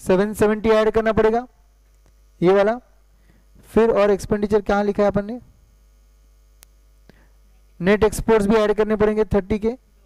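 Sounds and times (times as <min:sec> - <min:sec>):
man speaking: 0:00.0 - 0:01.5, 0:02.4 - 0:03.0, 0:03.7 - 0:05.5, 0:07.7 - 0:10.0
electrical mains hum: 0:00.0 - 0:10.0
faint ticks: 0:06.6 - 0:07.2.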